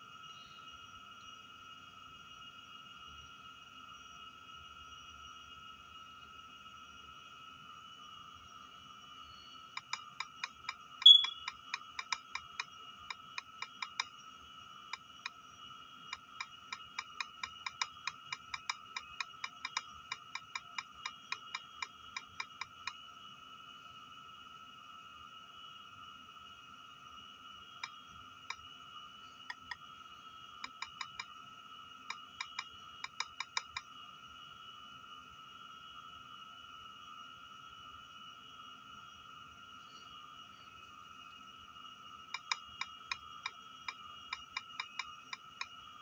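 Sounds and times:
high-pitched two-tone whine: 0.0s - 46.0s.

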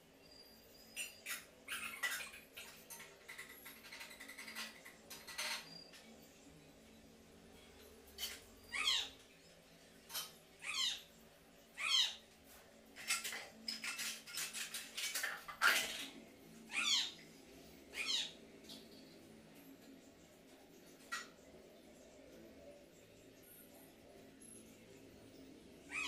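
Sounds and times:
scratchy clicking and rustling: 2.0s - 6.1s, 13.0s - 16.2s.

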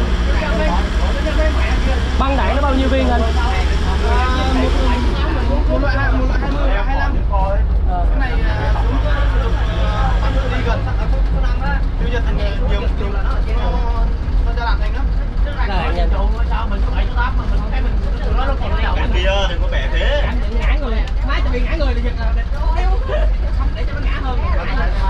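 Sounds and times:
people talking: 0.0s - 25.0s
truck engine and road rumble: 0.0s - 25.0s.

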